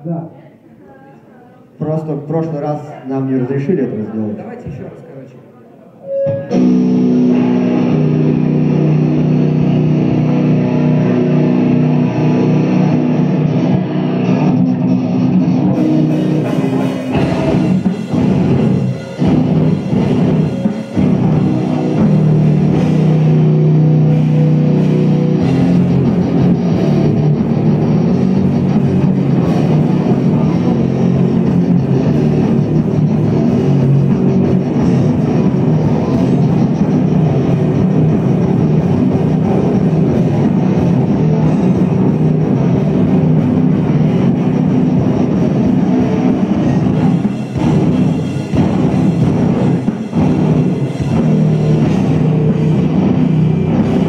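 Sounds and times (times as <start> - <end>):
rock band playing live: 6.0 - 54.0.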